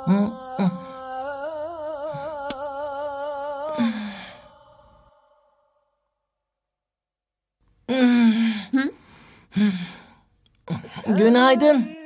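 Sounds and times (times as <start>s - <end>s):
man singing call to prayer: 0.0s - 3.8s, 11.1s - 12.0s
breathy sigh: 3.7s - 5.0s, 7.9s - 11.0s.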